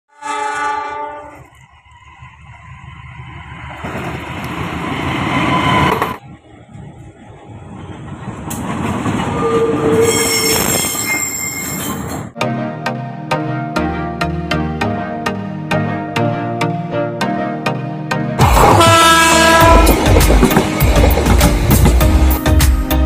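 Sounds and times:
locomotive horn blast: 0.1 - 1.5, 18.4 - 21.0
diesel locomotive running: 1.1 - 12.4, 18.4 - 22.8
train wheel squeal: 4.6 - 6.2, 9.2 - 12.3.

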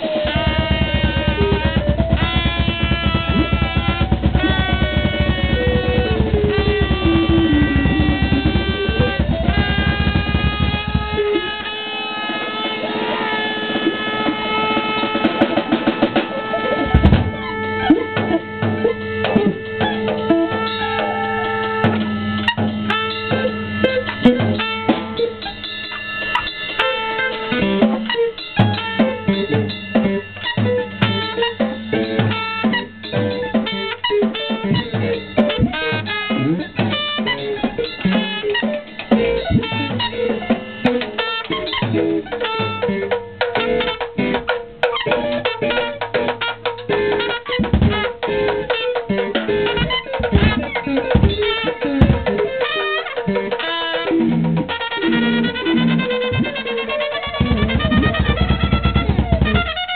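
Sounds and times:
drum kit: 0.0 - 59.9
electric guitar: 0.0 - 59.9
trumpet: 0.0 - 59.9.

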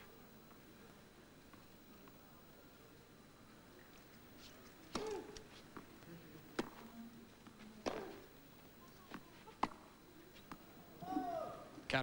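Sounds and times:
tennis racket hitting ball: 4.9 - 5.4, 6.6 - 6.8, 7.8 - 8.2, 9.6 - 9.8.

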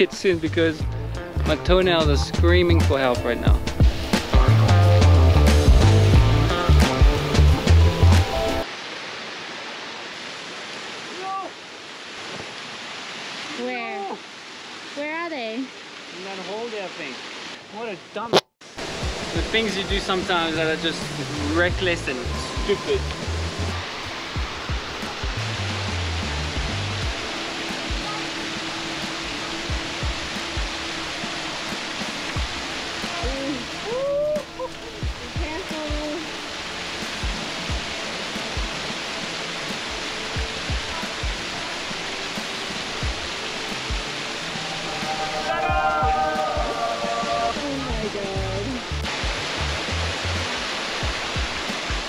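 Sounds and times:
background music: 0.0 - 8.6, 18.8 - 52.0
waterfall splashing over rocks: 1.5 - 52.0.

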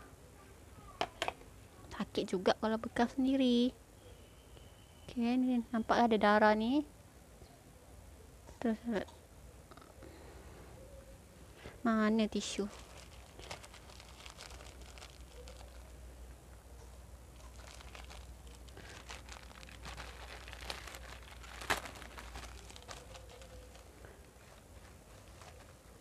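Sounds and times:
rustling and handling of tissue: 11.6 - 26.0.

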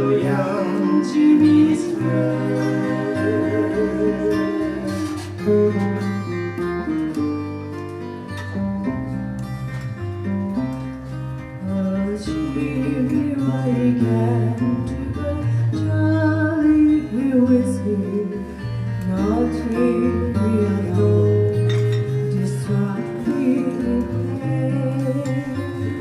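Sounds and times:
person singing: 0.0 - 5.8
acoustic guitars: 0.0 - 26.0
upright bass: 0.0 - 26.0.

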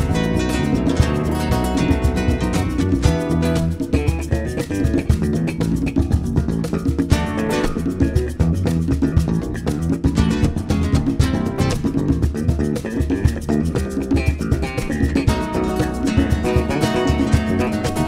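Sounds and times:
acoustic and electric guitars: 0.0 - 18.0
bass guitar: 0.0 - 18.0
hand percussion: 0.0 - 18.0.

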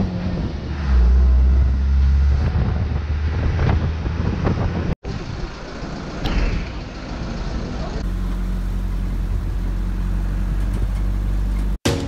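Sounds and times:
truck engine running: 4.0 - 12.0.

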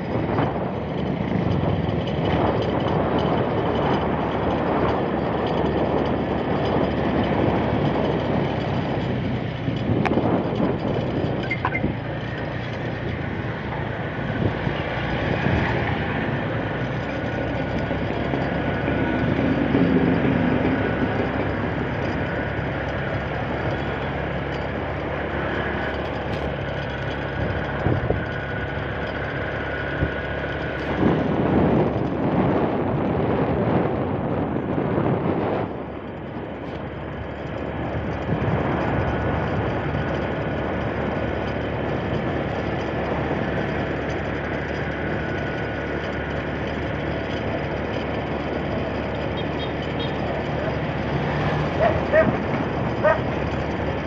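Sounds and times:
motorcycle engine running: 0.0 - 54.0
wind and road noise on microphone: 0.0 - 54.0.

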